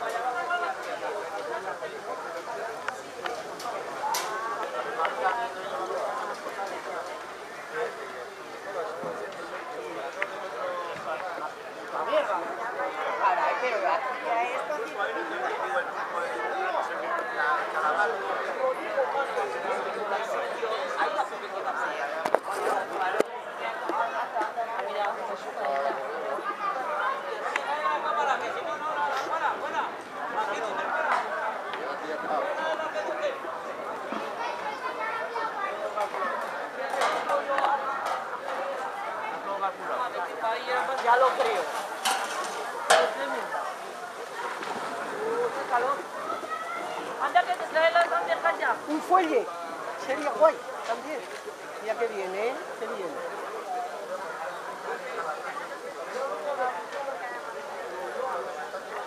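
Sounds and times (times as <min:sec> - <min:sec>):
people chattering: 0:00.0 - 0:59.0
people talking at once: 0:00.0 - 0:59.0.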